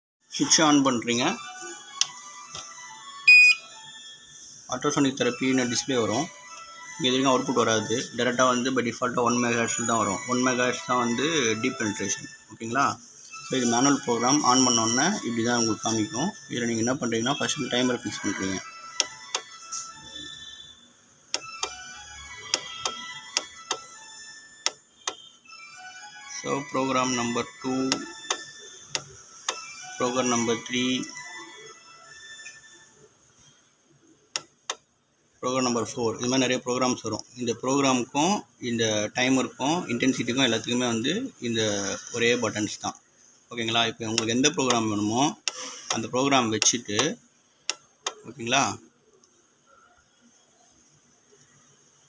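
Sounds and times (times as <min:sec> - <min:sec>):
short high electronic beep: 0:03.3 - 0:03.6.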